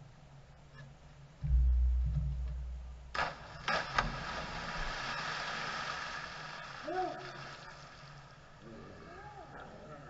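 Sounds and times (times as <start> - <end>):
low rumble: 1.4 - 4.6
bodies splashing into water: 3.1 - 8.4
water churning and splashing: 3.1 - 8.6.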